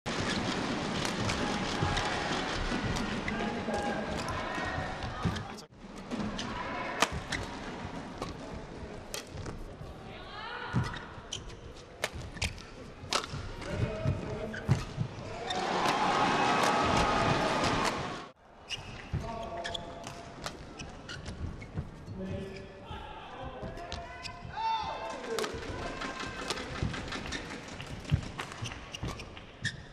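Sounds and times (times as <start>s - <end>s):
shoes squeaking on court: 0.1s - 9.9s, 10.7s - 15.7s, 18.7s - 24.6s, 25.2s - 29.9s
arena crowd noise: 0.1s - 11.0s, 15.2s - 19.4s, 22.2s - 28.4s
crowd cheering: 15.2s - 18.4s.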